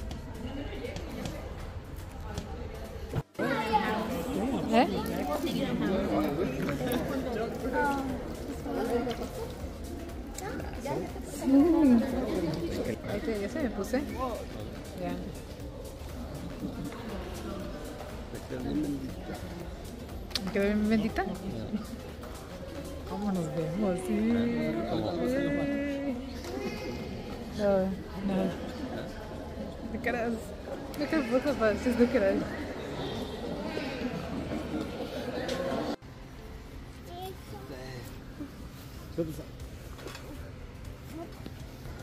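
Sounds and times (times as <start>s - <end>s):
faint background noise: 0.0s - 42.0s.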